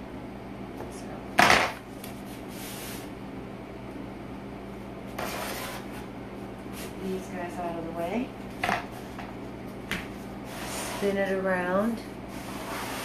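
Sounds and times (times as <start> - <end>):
steady low hum: 0.0 - 13.0
tool scraping: 5.2 - 6.1, 12.3 - 13.0.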